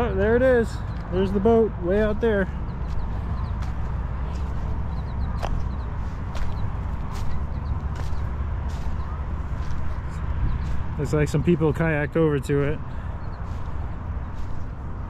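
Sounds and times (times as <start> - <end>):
wind rumbling on microphone: 0.8 - 15.0
footsteps crunching on seaweed: 2.9 - 11.0.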